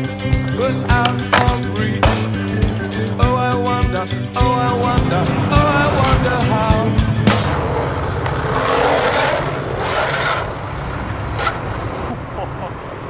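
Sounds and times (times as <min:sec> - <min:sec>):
skateboard grinding and rolling: 0:00.4 - 0:03.0, 0:05.4 - 0:12.2
skateboard knock: 0:00.8 - 0:02.4
skateboard hitting metal handrail: 0:00.9 - 0:02.4.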